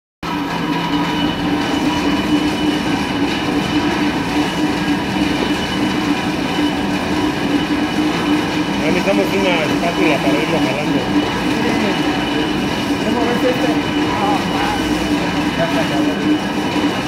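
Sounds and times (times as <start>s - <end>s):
granulator machine whir: 0.2s - 17.0s.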